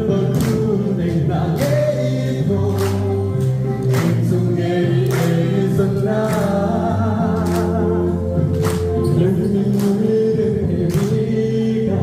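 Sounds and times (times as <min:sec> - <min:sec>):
electronic keyboard chords: 0:00.0 - 0:12.0
man singing into microphone: 0:00.0 - 0:12.0.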